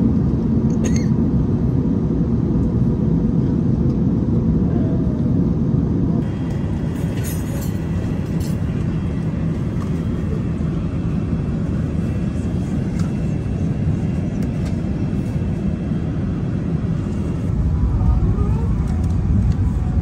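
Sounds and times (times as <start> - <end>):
airplane cabin rumble: 0.0 - 20.0.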